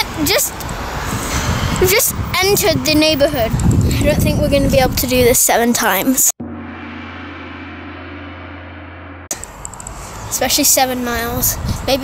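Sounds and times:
many-toned ringing: 6.4s - 9.3s
faint outdoor background noise: 9.3s - 12.0s.

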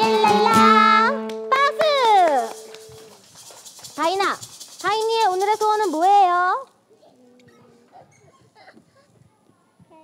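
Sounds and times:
applause: 1.3s - 4.0s.

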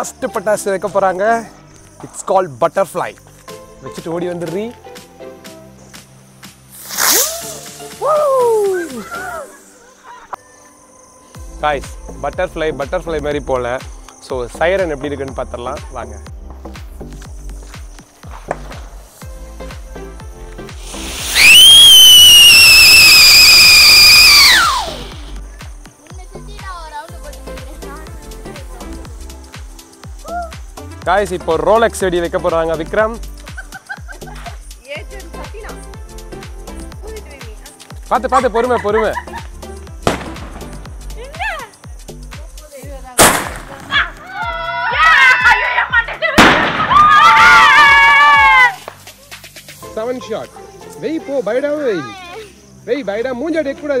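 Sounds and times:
background music with steady beat: 0.0s - 9.9s, 10.8s - 54.0s
firework bangs: 6.7s - 8.1s, 20.8s - 23.8s, 40.0s - 40.8s, 43.2s - 44.0s, 46.4s - 48.0s
firework high-pitched whistle: 6.7s - 9.8s, 20.8s - 25.4s.

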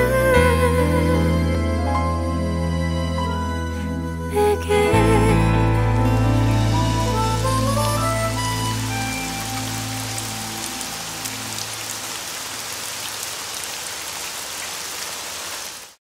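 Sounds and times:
sustained song notes: 0.1s - 11.6s
heavy rain on wet surface: 5.6s - 16.0s.

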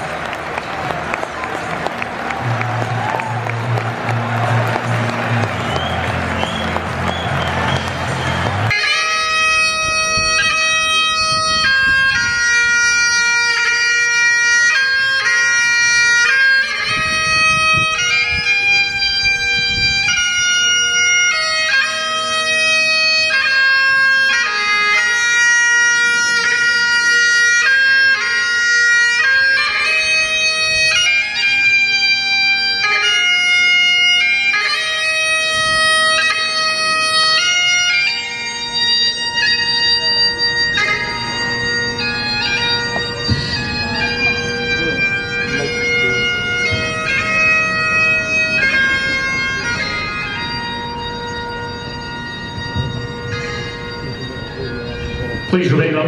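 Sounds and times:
bagpipe drones: 0.0s - 56.0s
bagpipe playing slow tune: 3.5s - 56.0s.

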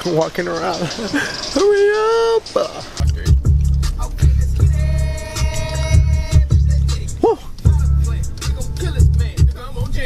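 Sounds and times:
ticking percussion: 0.0s - 10.0s
heavy bass beat: 0.4s - 10.0s.

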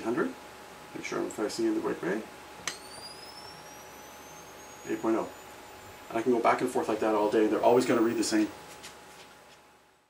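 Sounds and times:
flash recharging whine: 2.6s - 8.5s.

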